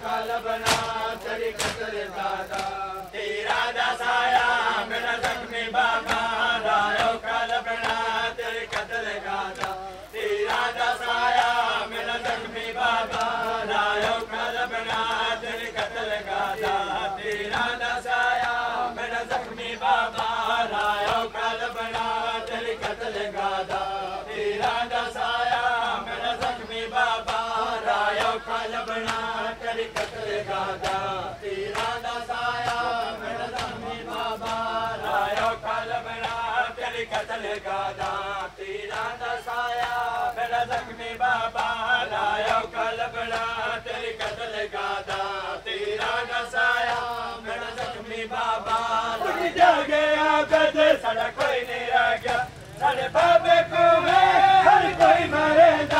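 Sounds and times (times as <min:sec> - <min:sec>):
voices chanting a lament: 0:00.0 - 0:55.9
hands slapping chests: 0:00.6 - 0:02.8, 0:28.1 - 0:29.3, 0:29.9 - 0:30.2, 0:30.8 - 0:31.1, 0:31.7 - 0:35.6.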